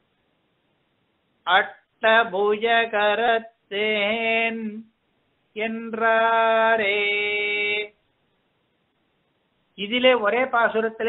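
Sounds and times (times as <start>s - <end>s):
man chanting: 1.5s - 4.9s, 5.6s - 8.0s, 9.8s - 11.0s.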